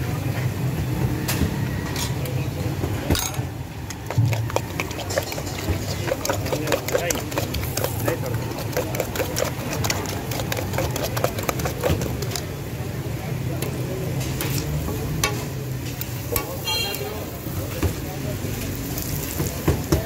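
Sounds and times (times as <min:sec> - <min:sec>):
utensil clicking against steel bowl: 0:03.9 - 0:12.4.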